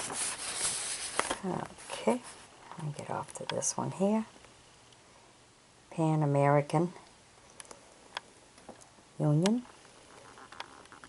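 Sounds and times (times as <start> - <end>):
camera handling rustle: 0.0 - 1.4.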